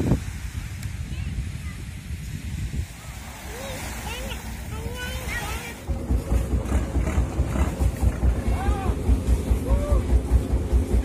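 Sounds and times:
surf lapping: 0.0 - 11.0
wind: 0.0 - 11.0
voices calling: 3.0 - 10.3
boat engine chugging: 3.1 - 11.0.

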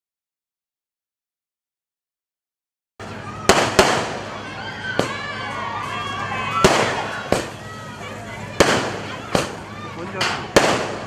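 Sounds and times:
fireworks bangs: 3.4 - 11.0.

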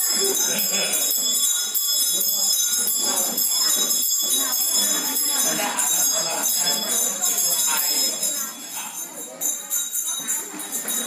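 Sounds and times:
people talking: 0.0 - 11.0
small bells jingling: 0.0 - 11.0.

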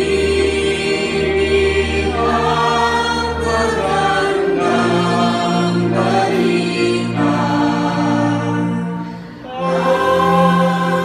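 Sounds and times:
group singing: 0.0 - 11.0.

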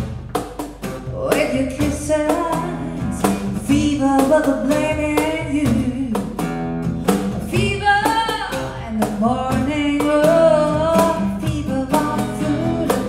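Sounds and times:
cajon beats: 0.0 - 13.0
strummed acoustic guitar: 0.0 - 13.0
woman singing: 1.0 - 6.5, 7.3 - 13.0.

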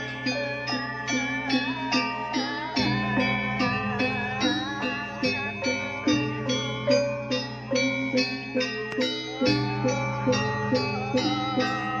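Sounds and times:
gamelan metallophones struck: 0.0 - 12.0.

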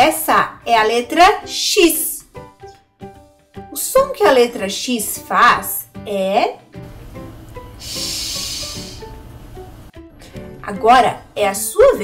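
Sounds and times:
soft background music: 0.0 - 12.0
woman making hissing shh sound: 7.8 - 9.2.

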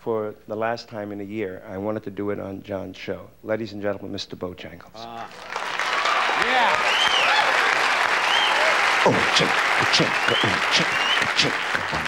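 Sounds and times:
audience applauding: 5.3 - 12.0
whistles and cheers: 5.6 - 12.0.

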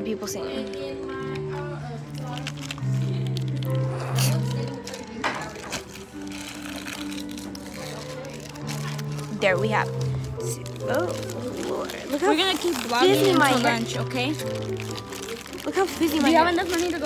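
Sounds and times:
people talking: 10.8 - 14.6.

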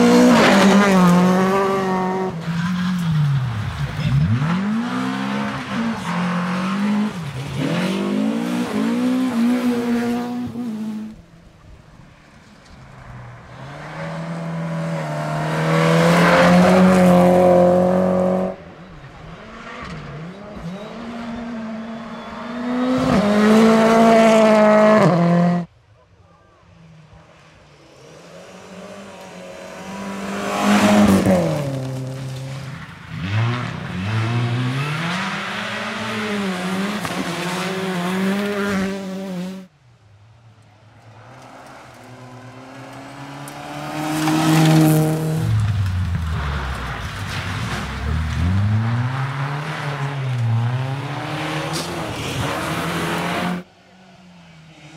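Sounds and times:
rally car engines revving: 0.0 - 11.2, 12.5 - 25.7, 26.9 - 39.7, 41.0 - 53.7.

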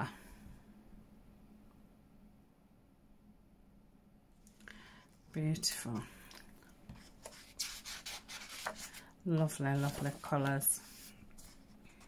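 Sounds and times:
book page turning swishes: 9.7 - 12.0.

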